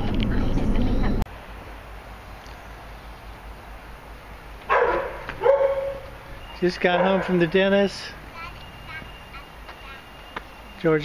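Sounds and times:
low outdoor rumble: 0.0 - 6.5
dog barking loudly: 4.7 - 6.2, 6.8 - 7.5.

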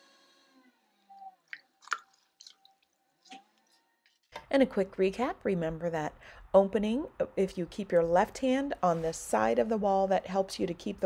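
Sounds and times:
wet clicks and drips: 1.5 - 3.7.

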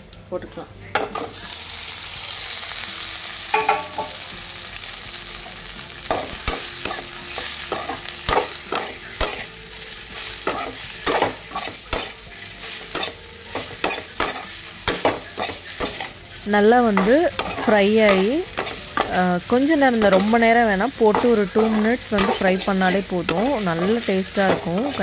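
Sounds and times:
food sizzling in a pan: 0.0 - 25.0.

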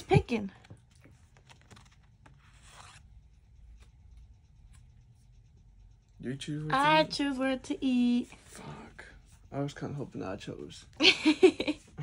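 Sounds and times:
paper cards rustling: 0.0 - 4.9.

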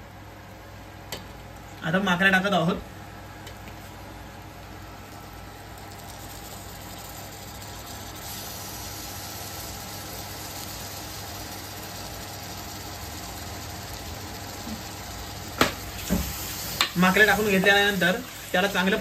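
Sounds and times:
squid sizzling in a pan: 3.5 - 19.0.

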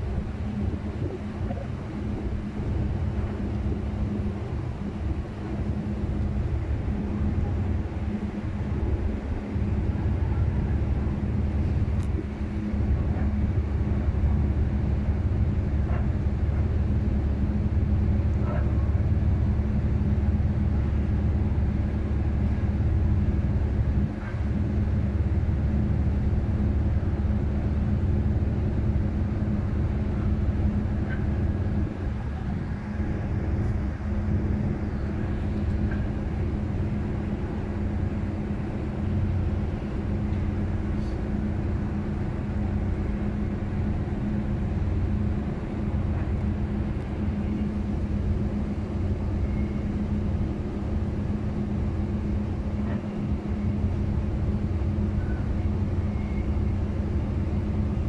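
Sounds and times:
diesel boat engine droning: 0.0 - 58.0.

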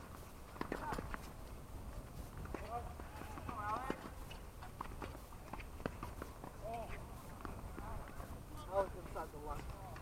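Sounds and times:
tennis ball bouncing on court: 0.5 - 1.1, 2.4 - 6.6.

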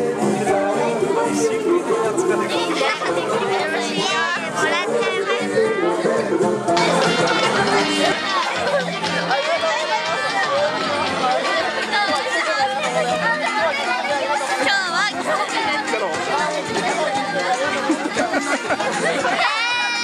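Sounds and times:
chatter of many people: 0.0 - 20.0
music: 0.0 - 20.0.

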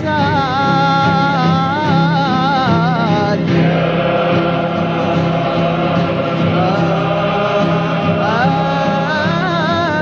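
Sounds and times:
solo lead voice singing: 0.0 - 10.0
men's choir holding a chord: 3.0 - 10.0.

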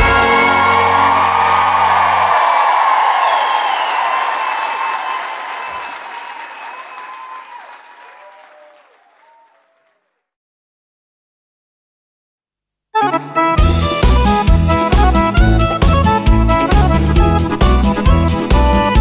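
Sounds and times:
live band final chord: 0.0 - 2.2, 13.0 - 19.0
audience applause: 0.0 - 10.2.

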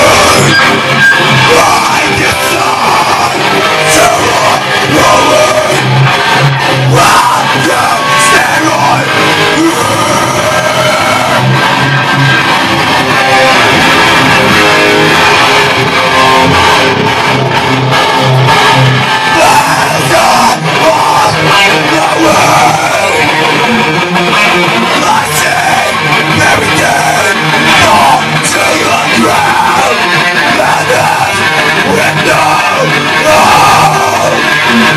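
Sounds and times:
electric guitar: 0.0 - 34.9
rock band playing live: 0.0 - 34.9.

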